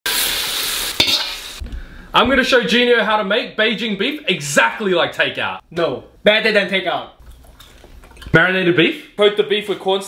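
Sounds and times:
food sizzling in a pan: 0.1 - 1.6.

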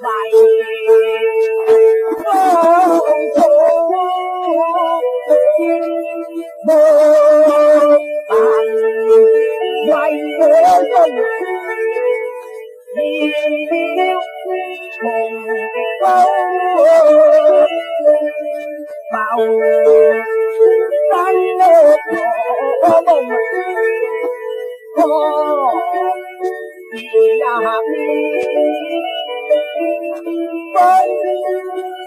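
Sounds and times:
opera song on old record: 0.0 - 32.0.

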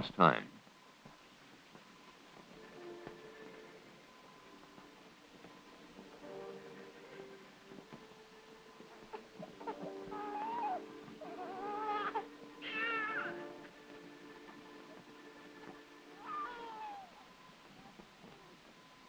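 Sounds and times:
background music: 0.0 - 19.0
infant crying: 9.6 - 13.5, 16.2 - 17.2.

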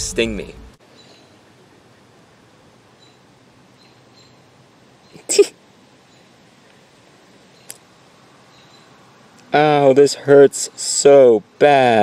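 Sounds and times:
faint outdoor background: 0.0 - 12.0
small click: 7.6 - 7.8.

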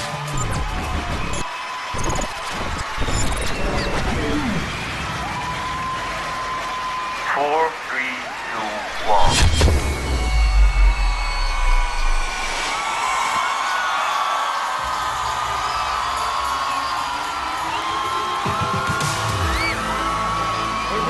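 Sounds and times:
music: 0.0 - 7.2, 14.6 - 21.0
crowd screaming and cheering: 0.0 - 21.0
deep boom: 8.9 - 12.6.

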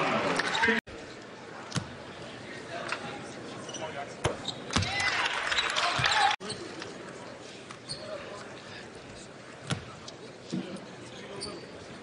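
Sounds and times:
arena crowd chatter: 0.0 - 12.0.

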